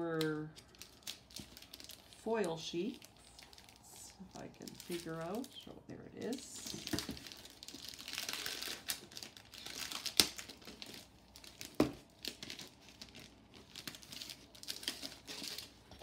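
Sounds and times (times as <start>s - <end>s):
cellophane wrapping crinkling: 0.0s - 16.0s.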